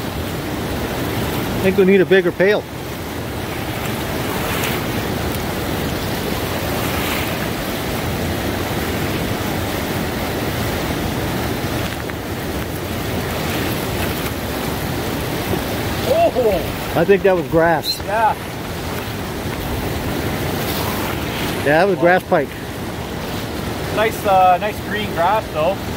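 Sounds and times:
river rushing through rapids: 0.0 - 25.9
wind on microphone: 3.0 - 21.7.

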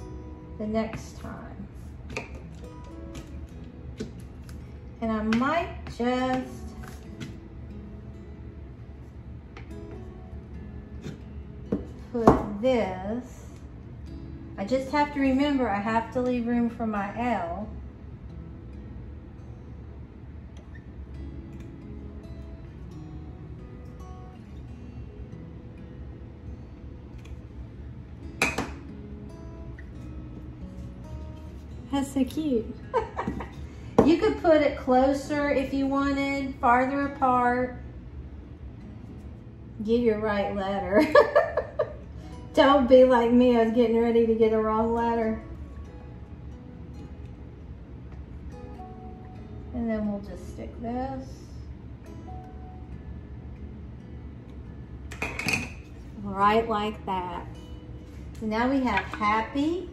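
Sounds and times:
soft background music: 0.0 - 59.9.

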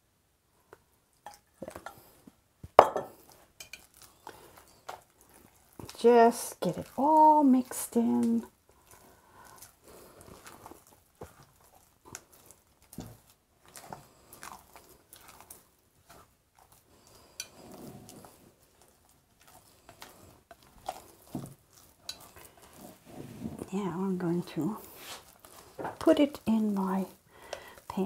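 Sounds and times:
batter squishing when stirred: 0.7 - 28.0
spatula scraping bowl: 3.2 - 28.0.

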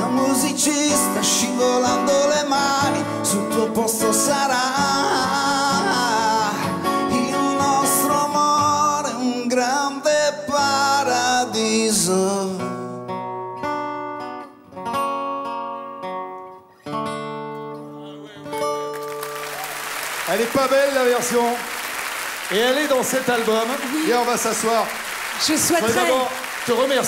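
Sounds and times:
live band playing pop ballad: 0.0 - 9.5
solo acoustic guitar: 0.0 - 19.4.

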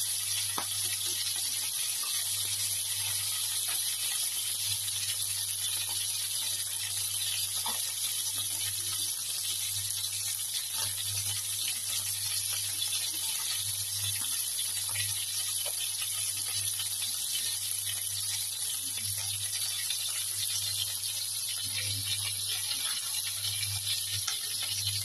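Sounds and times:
chicken sizzling in oil: 0.0 - 25.0.

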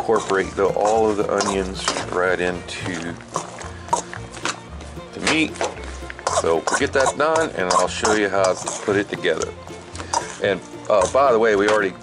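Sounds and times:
background music: 0.0 - 12.0
hands squishing ground meat: 0.0 - 12.0.

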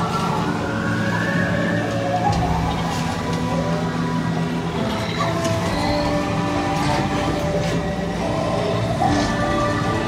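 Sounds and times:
long droning tones: 0.0 - 10.0.

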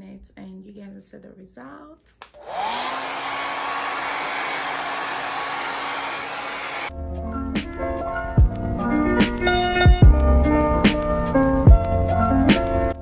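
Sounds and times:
hair dryer blowing: 2.3 - 6.9
music with a beat: 7.5 - 13.0.

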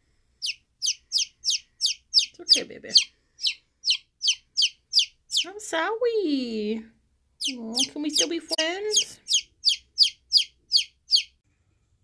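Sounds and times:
chick peeping loudly: 0.4 - 5.6, 7.4 - 11.4.

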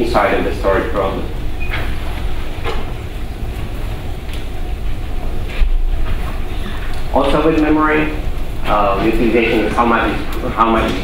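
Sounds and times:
low room noise rumble: 0.0 - 11.0.

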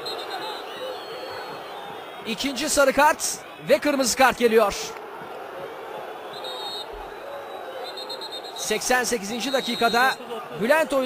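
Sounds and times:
distant crowd and players' voices: 0.0 - 11.0.

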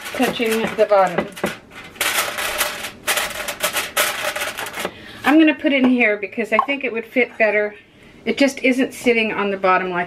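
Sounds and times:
aluminium foil crinkling: 0.0 - 4.9.

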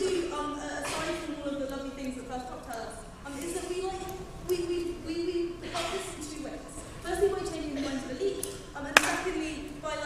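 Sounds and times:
woman speaking in a hall: 0.0 - 10.0.

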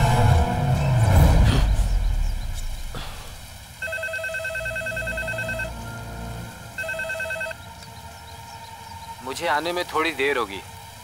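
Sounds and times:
telephone ringing with warbling trill: 3.8 - 5.7, 6.8 - 7.6.

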